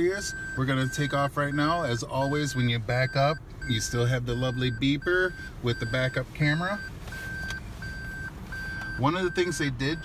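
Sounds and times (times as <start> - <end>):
high reverse warning beeps: 0.0 - 10.0.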